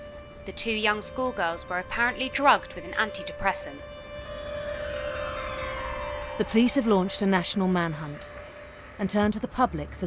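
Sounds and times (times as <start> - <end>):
held drone note: 0.0 - 10.0
downward pitch sweep: 0.6 - 9.5.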